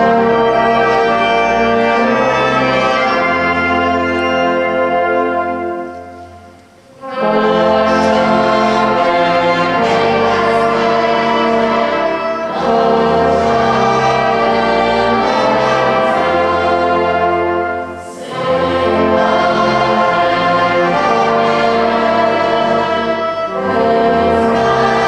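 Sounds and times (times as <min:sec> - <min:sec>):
brass band playing: 0:00.0 - 0:25.0.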